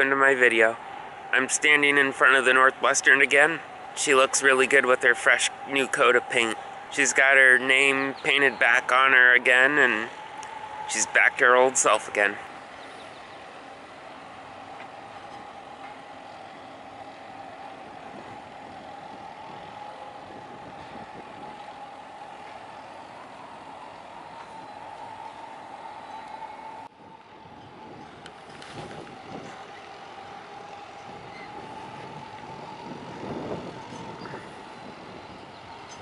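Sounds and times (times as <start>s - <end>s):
outdoor noise hiss: 0.0s - 36.0s
steady machine whine: 0.0s - 36.0s.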